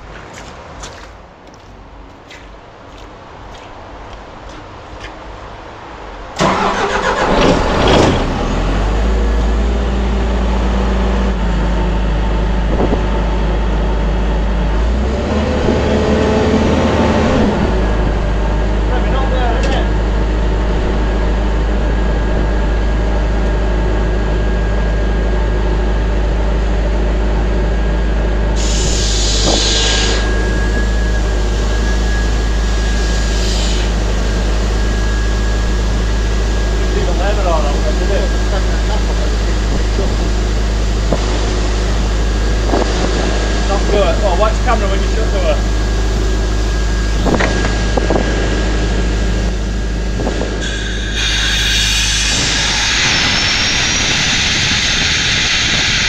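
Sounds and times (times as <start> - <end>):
diesel compressor engine running: 4.3 - 56.0
short air hiss: 28.6 - 30.3, 50.6 - 56.0.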